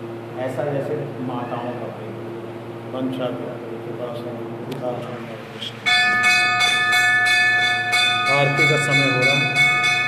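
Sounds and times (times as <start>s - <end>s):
metal bell ringing: 5.8s - 10.0s.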